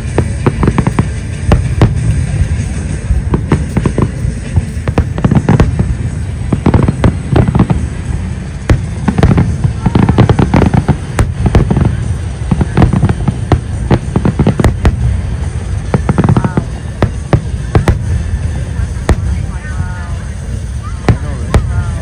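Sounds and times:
firework shells bursting: 0:00.0 - 0:18.3
deep continuous rumble: 0:00.0 - 0:22.0.

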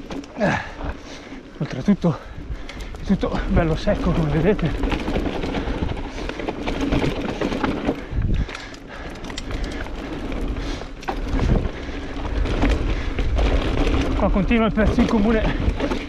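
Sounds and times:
bike rattling: 0:00.0 - 0:16.0
bike tyres on dry dirt: 0:00.0 - 0:16.0
wind on microphone: 0:07.9 - 0:08.6.

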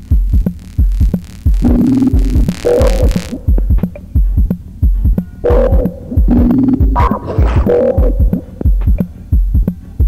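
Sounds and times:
synth tone: 0:00.0 - 0:03.6
deep kick drum thumps: 0:00.0 - 0:09.8.

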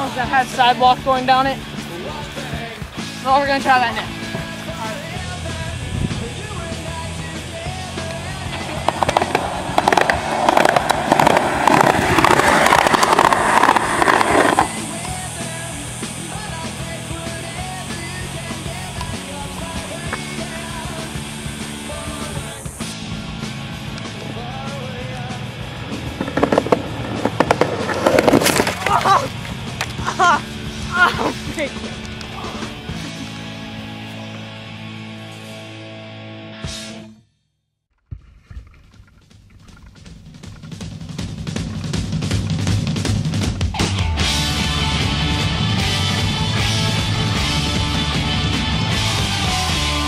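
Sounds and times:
skateboard wheels rolling on concrete: 0:00.0 - 0:35.7, 0:38.1 - 0:50.0
background music: 0:00.0 - 0:37.2, 0:43.6 - 0:50.0.

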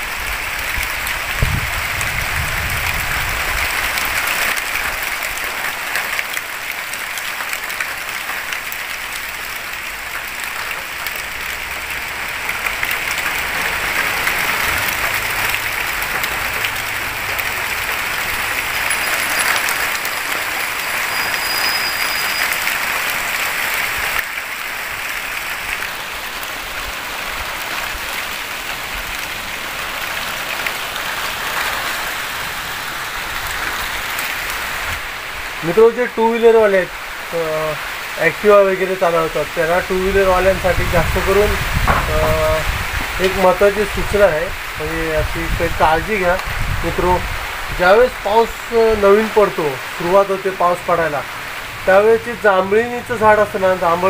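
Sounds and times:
heavy rain pouring: 0:00.0 - 0:54.0.

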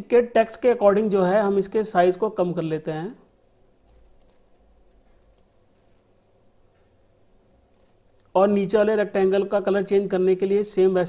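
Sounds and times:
faint computer mouse clicks: 0:03.8 - 0:04.4, 0:05.0 - 0:05.6, 0:07.7 - 0:08.4.

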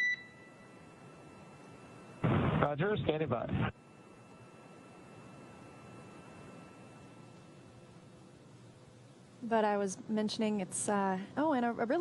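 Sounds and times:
short electronic beep: 0:00.0 - 0:00.6
faint radio line hiss: 0:00.0 - 0:12.0.

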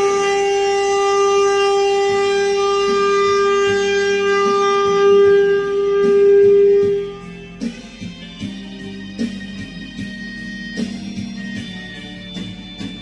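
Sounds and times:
saxophone holding long note: 0:00.0 - 0:07.7
recorded backing track: 0:00.0 - 0:13.0.

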